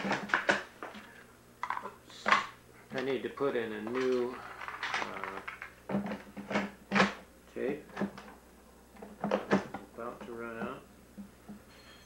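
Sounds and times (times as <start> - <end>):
tape recorder clicks and knocks: 4.8 - 7.2, 9.0 - 10.7.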